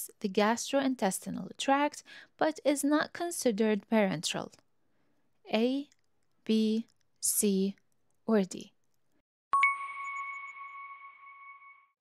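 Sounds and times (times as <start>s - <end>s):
bell-like chime ding: 9.6s - 12.0s.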